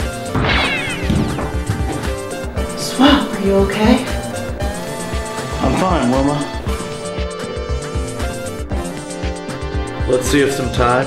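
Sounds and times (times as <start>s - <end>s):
music with a steady beat: 0.0s - 11.0s
ray-gun zap: 0.4s - 1.7s.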